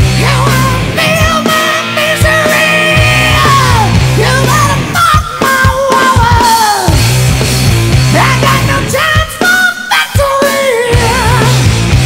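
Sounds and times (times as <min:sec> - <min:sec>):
loud rock music: 0:00.0 - 0:12.0.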